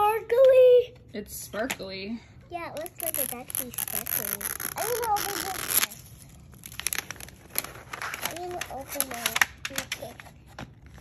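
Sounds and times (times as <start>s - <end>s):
plastic package crinkling: 3.0s - 10.1s.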